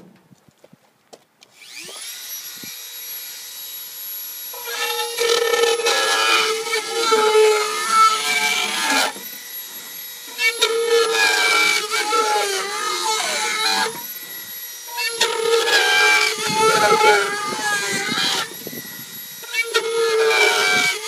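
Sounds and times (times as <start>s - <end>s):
rotary tool whining while cutting: 1.5s - 21.0s.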